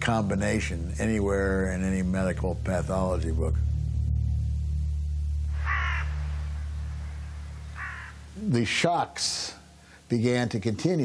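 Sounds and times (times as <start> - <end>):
low steady hum: 0.0 - 11.0
crow cawing: 5.5 - 8.4.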